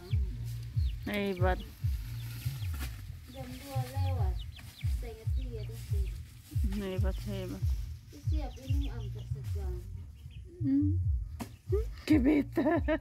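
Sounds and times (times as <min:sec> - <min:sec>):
chickens clucking: 0:00.0 - 0:10.7
person mumbling: 0:10.6 - 0:11.1.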